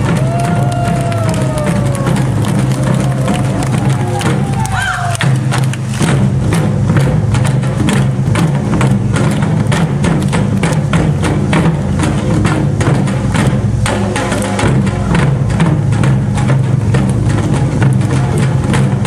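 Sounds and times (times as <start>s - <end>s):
drum ensemble playing fast rhythm: 0.0s - 19.0s.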